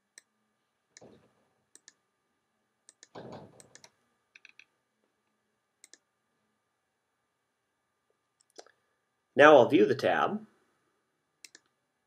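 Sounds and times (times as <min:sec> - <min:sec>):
computer mouse clicks: 0:01.0 - 0:02.0, 0:02.9 - 0:04.7, 0:05.8 - 0:06.1, 0:08.4 - 0:08.8, 0:11.4 - 0:11.8.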